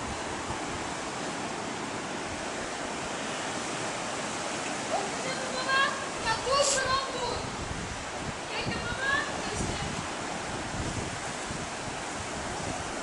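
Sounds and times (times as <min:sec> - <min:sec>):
sea surf washing in: 0:00.0 - 0:13.0
person's voice: 0:04.9 - 0:07.5.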